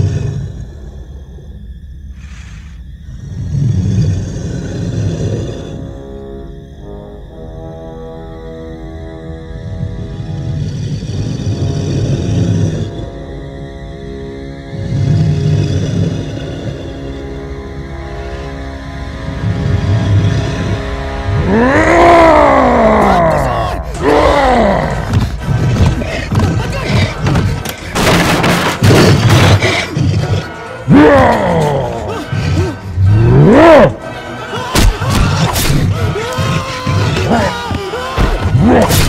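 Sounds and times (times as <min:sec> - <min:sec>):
creature's deep rough growl: 0:00.0 - 0:01.0, 0:03.1 - 0:06.1, 0:09.7 - 0:13.3, 0:14.7 - 0:17.6, 0:19.1 - 0:34.1
low dark film score: 0:00.0 - 0:39.0
tense horror music: 0:00.0 - 0:39.0.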